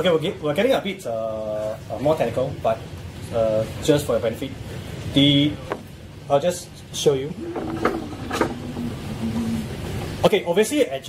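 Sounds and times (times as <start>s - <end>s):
laser carriage sliding on rail: 7.4s - 10.3s.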